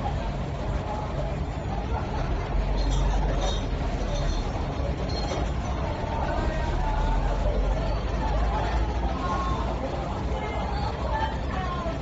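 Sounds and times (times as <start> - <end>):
hubbub of voices: 0.0 - 12.0
road traffic rumble: 0.0 - 12.0.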